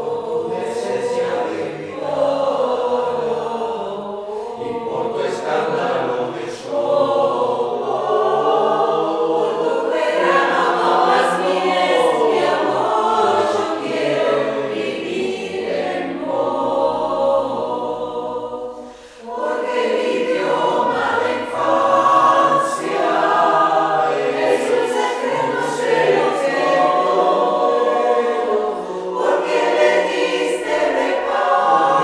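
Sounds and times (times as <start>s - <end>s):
mixed choir singing unaccompanied: 0.0s - 32.0s.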